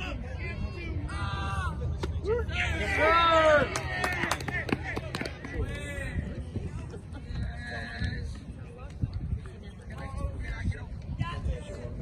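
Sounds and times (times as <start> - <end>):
crowd and field noise: 0.0 - 12.0
crowd cheering: 1.1 - 6.0.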